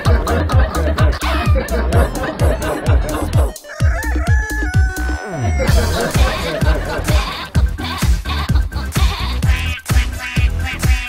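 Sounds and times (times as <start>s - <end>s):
dance-pop music: 0.0s - 11.0s
rooster-style crow: 3.4s - 5.8s.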